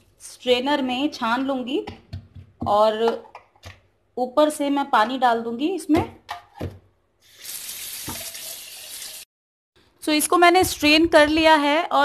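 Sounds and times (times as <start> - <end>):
tap water running into sink: 7.4 - 9.2.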